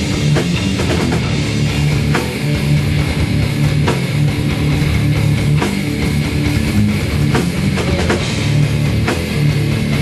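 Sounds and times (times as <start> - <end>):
drums: 0.0 - 10.0
heavy electric guitar riff: 0.0 - 10.0.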